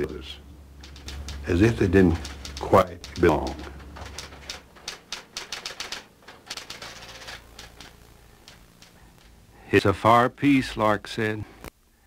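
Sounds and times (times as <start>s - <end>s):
typewriter keys clicking: 0.8s - 9.3s.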